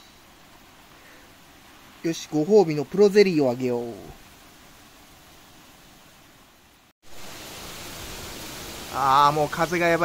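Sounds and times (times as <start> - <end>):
wind and rain hissing: 0.0 - 10.0.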